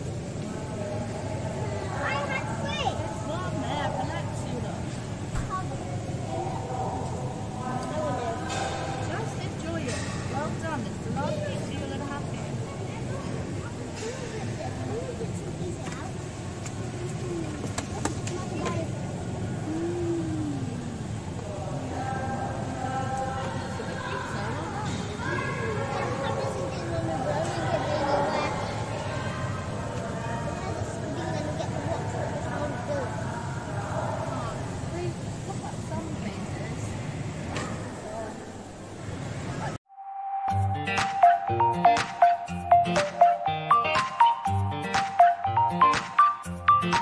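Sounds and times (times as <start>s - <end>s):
faint voices: 0.0s - 39.8s
background voices: 19.4s - 23.3s.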